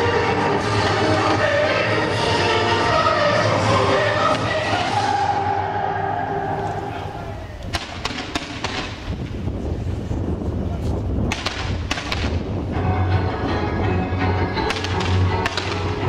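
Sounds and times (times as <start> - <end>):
music with low bass: 12.3 - 16.0.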